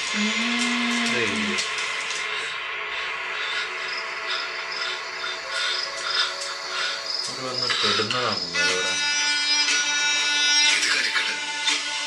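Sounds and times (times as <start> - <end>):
sustained drone of held tones: 0.0 - 1.6, 2.9 - 11.6.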